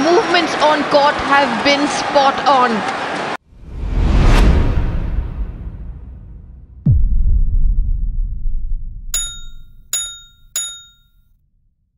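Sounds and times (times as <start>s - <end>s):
low rumble: 3.5s - 9.1s
bright chime sound effects: 9.2s - 11.0s.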